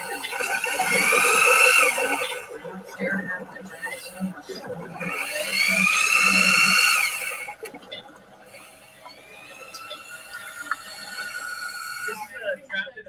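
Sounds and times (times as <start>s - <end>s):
high-pitched whine: 0.0s - 13.0s.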